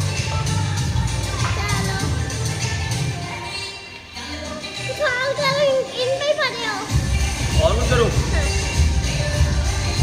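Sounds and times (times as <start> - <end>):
background music: 0.0 - 10.0
child's high-pitched voice: 4.9 - 6.9.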